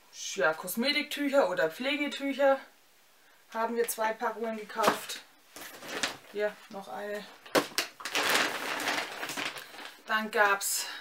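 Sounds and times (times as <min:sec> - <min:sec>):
shopping bag rustling: 0:04.8 - 0:10.1.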